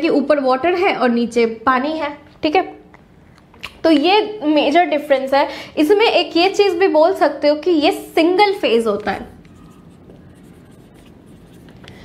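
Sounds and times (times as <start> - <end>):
marker writing on whiteboard: 9.0 - 11.9.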